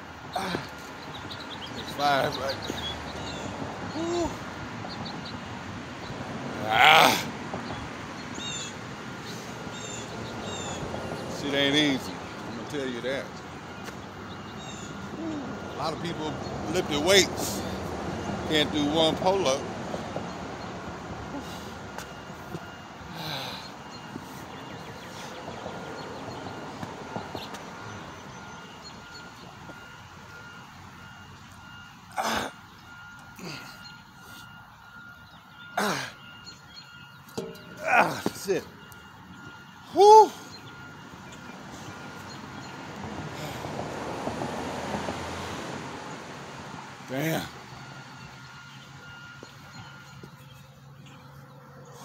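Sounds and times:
outdoor background noise: 0:00.0 - 0:52.0
man grunting with effort: 0:00.4 - 0:00.7, 0:04.0 - 0:04.4, 0:06.6 - 0:07.3, 0:32.2 - 0:32.6, 0:35.8 - 0:36.2, 0:37.8 - 0:38.4.

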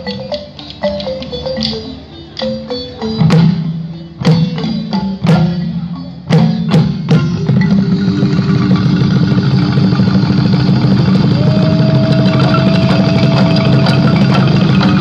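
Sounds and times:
balafon and djembe ensemble: 0:00.0 - 0:15.0.

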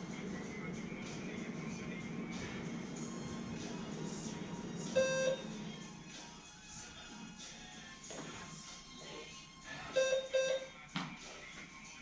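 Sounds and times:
background music: 0:00.0 - 0:12.0
short electronic beep: 0:05.0 - 0:05.4, 0:10.0 - 0:10.7.

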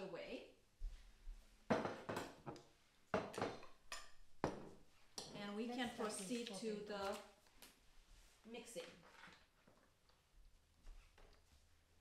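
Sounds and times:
bowls clinking on countertop: 0:01.7 - 0:05.4.

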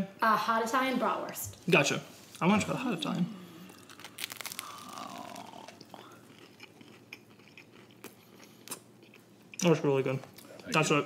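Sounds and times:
person chewing food: 0:03.6 - 0:09.6.

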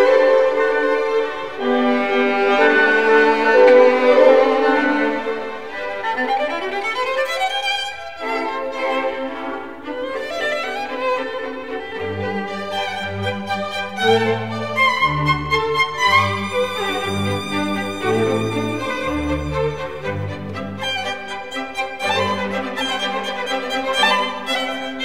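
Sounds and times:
violin melody: 0:00.0 - 0:25.0.

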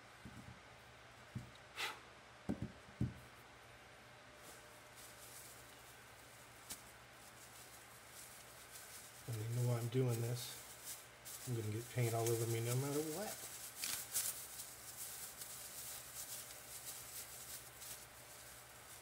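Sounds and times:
canvas knocking on table: 0:02.5 - 0:03.2
plastic bag crinkling: 0:04.4 - 0:19.0.

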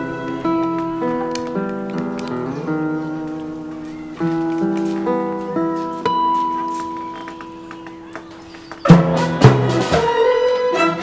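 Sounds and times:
classical guitar chord ringing: 0:00.0 - 0:07.7.

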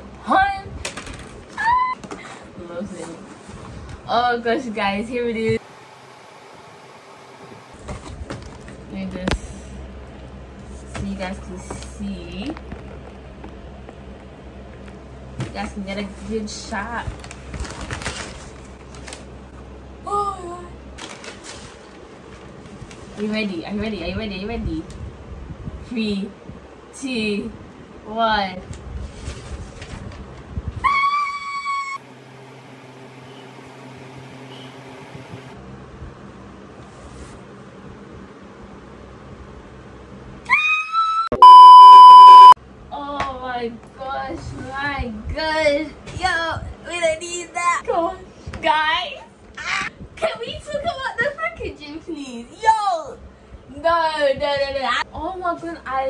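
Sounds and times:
paper packaging rustling: 0:17.1 - 0:19.4, 0:21.0 - 0:23.3
loud high held tone: 0:41.3 - 0:42.6.

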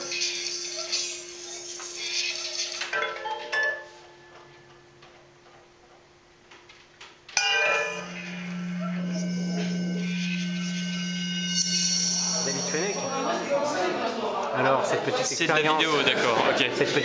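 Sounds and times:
ringing metallic notes: 0:07.4 - 0:14.4
steady low drone: 0:07.5 - 0:14.2.

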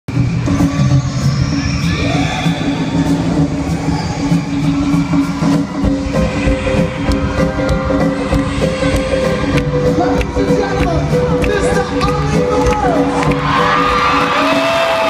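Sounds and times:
loud live concert music: 0:00.1 - 0:15.0.

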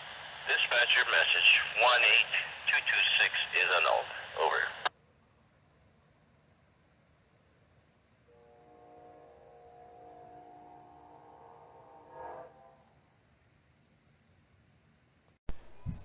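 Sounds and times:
distant locomotive air horn: 0:08.3 - 0:13.1.

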